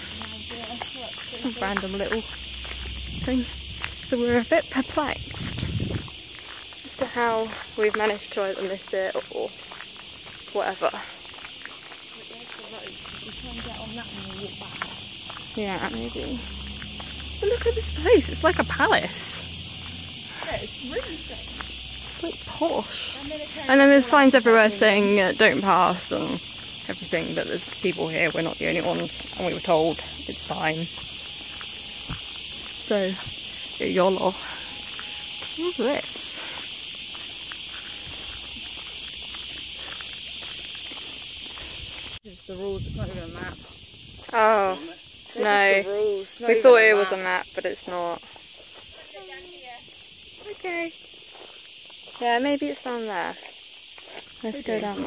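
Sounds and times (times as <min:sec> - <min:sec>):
faint footsteps on ground: 0:00.0 - 0:45.8, 0:46.6 - 0:55.0
cicadas buzzing: 0:00.0 - 0:55.0.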